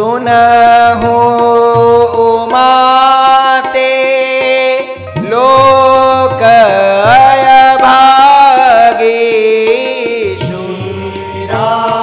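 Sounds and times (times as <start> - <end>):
man chanting a devotional verse: 0.0 - 12.0
tabla playing: 0.0 - 12.0.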